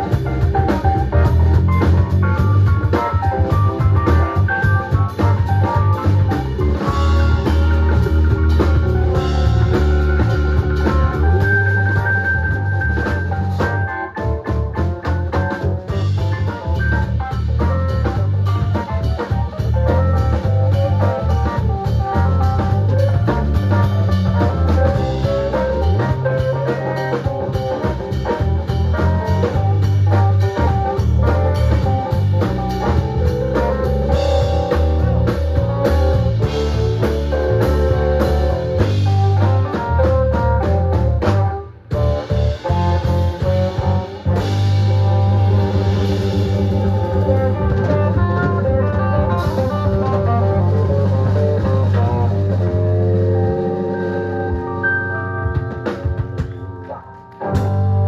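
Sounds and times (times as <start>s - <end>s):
live blues band playing: 0.0s - 58.0s.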